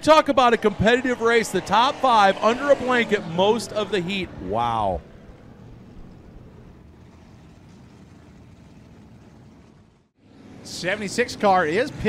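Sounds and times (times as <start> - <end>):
race car engines rumbling: 0.0 - 12.0.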